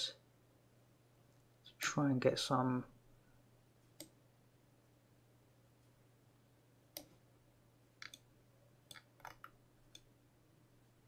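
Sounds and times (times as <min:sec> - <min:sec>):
low electrical hum: 0:00.0 - 0:11.0
computer mouse clicks: 0:04.0 - 0:04.2, 0:06.9 - 0:07.2, 0:08.0 - 0:08.3, 0:08.9 - 0:10.1.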